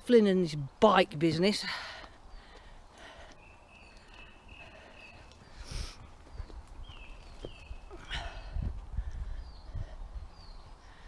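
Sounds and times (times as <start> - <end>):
birds singing: 0.5 - 11.0.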